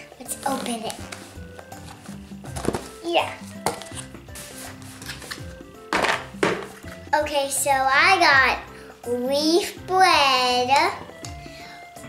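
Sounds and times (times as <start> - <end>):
background music: 0.0 - 12.0
plastic lunch box lids clattering: 5.9 - 6.8.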